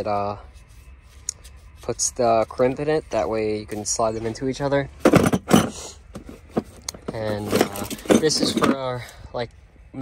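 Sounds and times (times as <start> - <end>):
hand tools clattering in tool box: 7.1 - 8.9.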